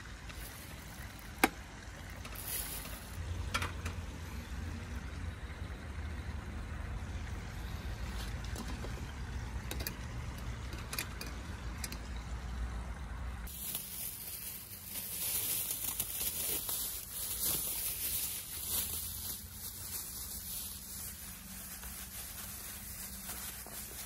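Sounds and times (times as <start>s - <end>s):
pot boiling on camp stove: 0.0s - 24.0s.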